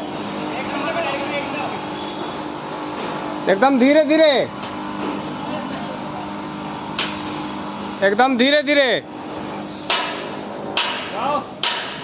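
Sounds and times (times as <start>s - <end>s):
metallic knocks on steel frame: 10.8s - 12.0s.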